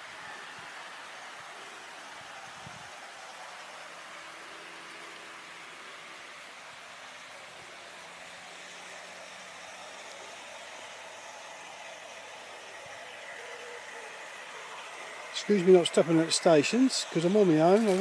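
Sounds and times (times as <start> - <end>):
model trains running on track: 0.0 - 18.0.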